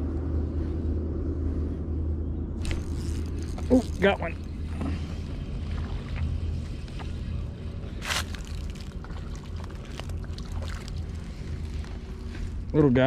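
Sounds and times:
spinning reel cranking: 2.6s - 4.1s.

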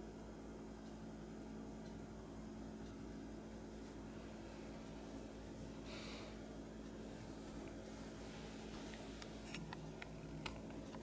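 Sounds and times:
low room hum: 0.0s - 11.0s
faint clicks and ticks: 0.4s - 11.0s.

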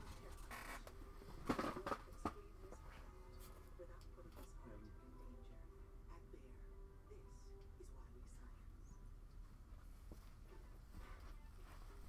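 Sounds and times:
office chair squeaking: 0.2s - 2.0s
rustling of movement: 9.7s - 12.0s.

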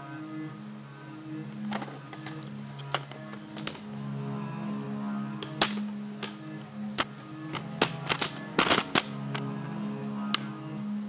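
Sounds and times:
plastic clicks and knocks: 1.7s - 3.8s, 5.4s - 6.4s, 7.0s - 9.1s.

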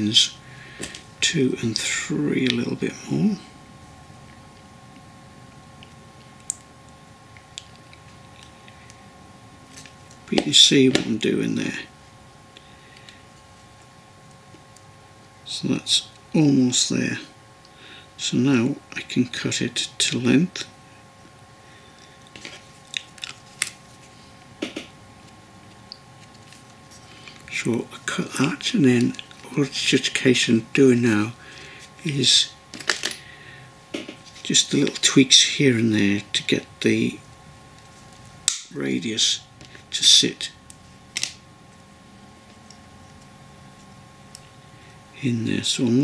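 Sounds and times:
faint steady hum: 0.0s - 46.0s.

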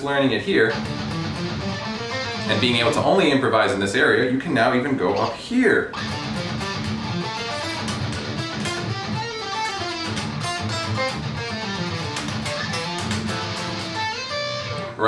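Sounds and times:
fast electric guitar notes: 0.4s - 3.4s, 5.2s - 15.0s.

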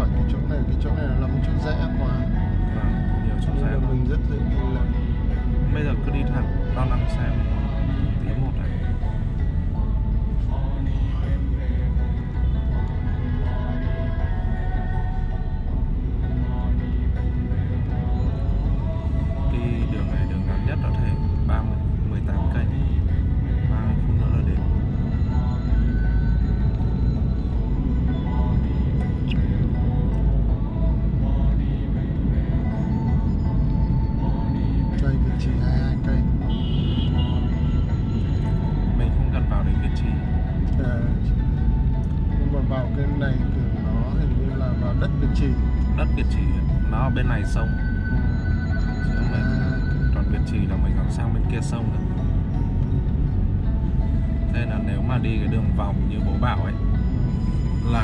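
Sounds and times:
voices: 0.0s - 5.0s, 5.7s - 9.2s, 18.0s - 26.1s, 34.2s - 37.6s, 42.4s - 47.9s
music: 0.0s - 58.0s.

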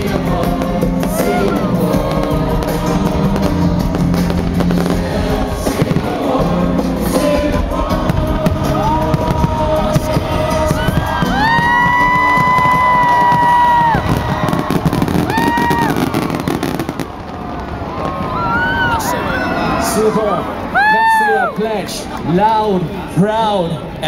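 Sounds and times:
fireworks bursting and crackling: 0.0s - 19.8s
people cheering woo: 1.0s - 2.3s, 8.6s - 9.4s, 10.4s - 21.8s.

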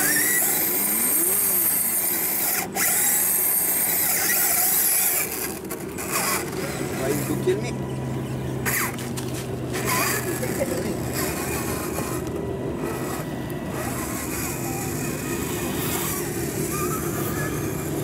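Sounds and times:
electric motor and gears whining: 0.0s - 18.0s
tyres crunching on gravel: 4.4s - 12.4s.

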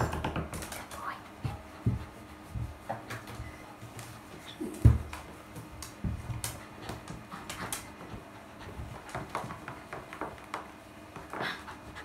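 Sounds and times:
towel rubbing wet dog fur: 1.2s - 10.5s.

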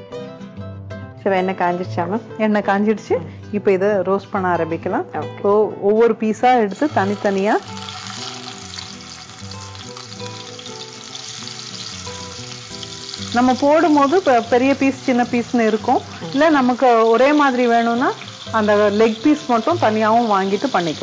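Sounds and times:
chicken sizzling in oil: 6.6s - 21.0s.

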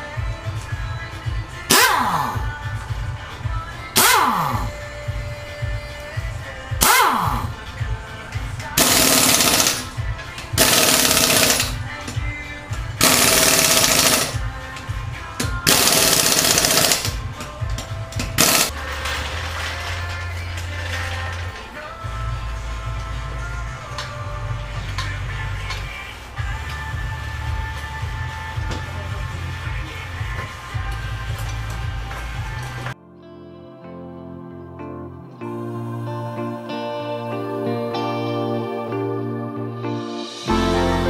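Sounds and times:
background music: 0.0s - 41.0s
impact wrench spinning: 1.7s - 2.4s, 4.0s - 4.7s, 6.8s - 7.5s, 8.8s - 11.8s, 13.0s - 14.5s, 15.4s - 17.4s, 18.1s - 21.5s
impact wrench hammering: 1.7s - 2.5s, 4.0s - 4.8s, 6.8s - 7.5s, 8.7s - 14.5s, 15.4s - 19.8s.

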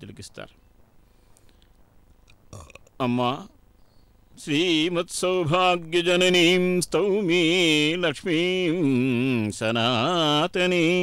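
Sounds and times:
faint clicks: 0.8s - 3.0s
man's throaty vocal sound: 2.5s - 3.5s.

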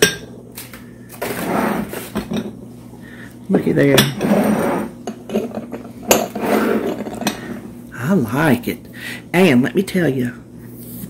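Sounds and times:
ceramic bowls knocking and scraping: 3.9s - 7.6s.

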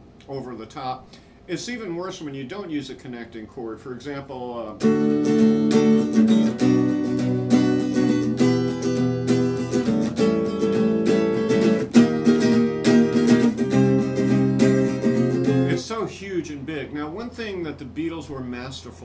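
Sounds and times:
man speaking: 0.2s - 4.8s, 15.7s - 19.0s
acoustic guitar strumming: 4.8s - 16.2s.

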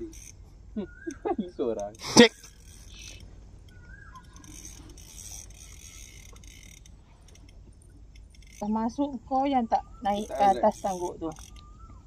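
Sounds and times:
fishing reel whirring: 0.0s - 12.0s.

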